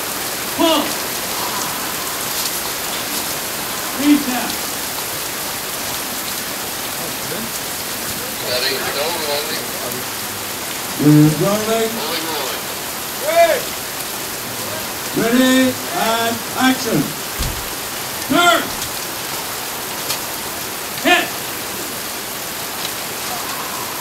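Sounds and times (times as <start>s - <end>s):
heavy rain on gravel roof: 0.0s - 24.0s
short voices: 0.4s - 4.9s, 10.9s - 13.8s, 15.1s - 19.0s, 21.0s - 21.9s.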